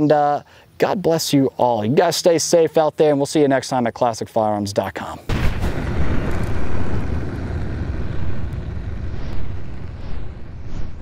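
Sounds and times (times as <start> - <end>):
boom sound effect: 5.3 - 11.0
deep steady rumble: 5.4 - 11.0.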